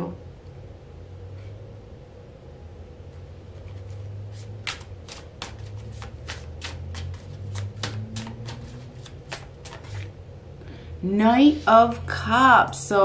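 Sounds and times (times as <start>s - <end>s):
low steady hum: 0.0s - 13.0s
cards being shuffled: 3.6s - 10.2s.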